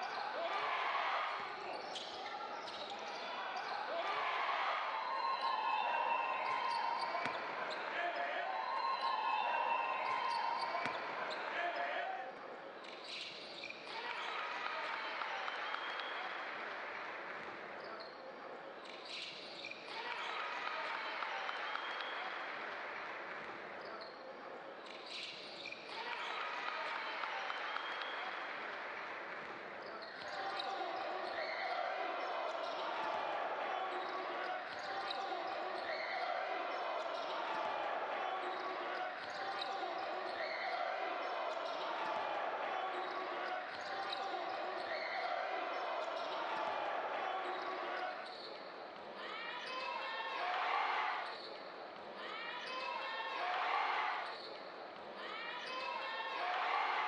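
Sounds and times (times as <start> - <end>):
arena crowd voices: 0.0 - 57.0.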